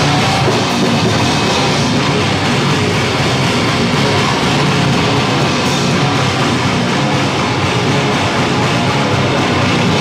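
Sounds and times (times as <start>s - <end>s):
heavily distorted guitar and bass: 0.0s - 10.0s.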